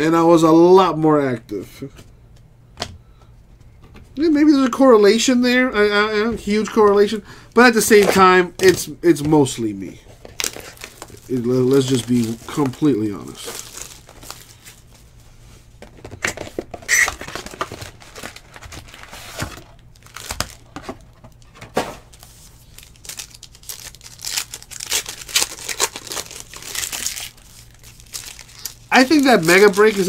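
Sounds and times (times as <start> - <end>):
plastic wrapper crinkling: 6.6 - 15.2, 15.9 - 30.0.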